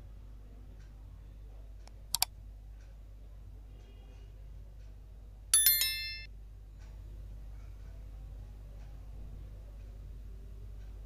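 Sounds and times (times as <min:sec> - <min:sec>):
bright bell ding: 0:05.6 - 0:06.3.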